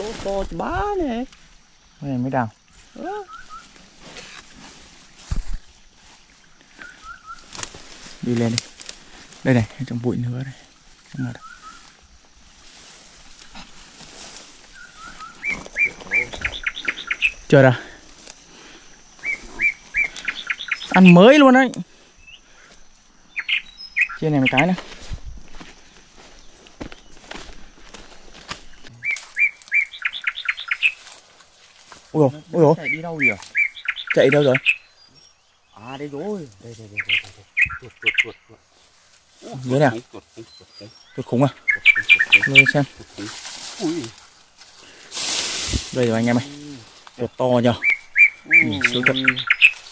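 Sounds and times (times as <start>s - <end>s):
footsteps rustling through undergrowth: 0.0s - 21.5s, 22.3s - 49.9s
animal high chirps: 3.0s - 3.7s, 14.8s - 17.5s, 29.0s - 31.0s, 32.5s - 34.9s, 35.8s - 38.6s, 39.4s - 44.1s, 47.6s - 49.9s
bird calling high notes: 3.0s - 3.7s, 14.8s - 17.5s, 29.0s - 31.1s, 32.2s - 44.2s, 46.2s - 49.9s
man exclaiming: 39.4s - 40.9s, 46.3s - 46.8s, 48.5s - 49.4s.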